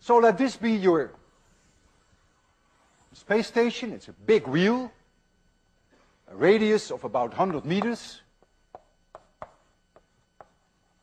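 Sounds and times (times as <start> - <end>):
chalk tapping on blackboard: 7.4 - 10.8.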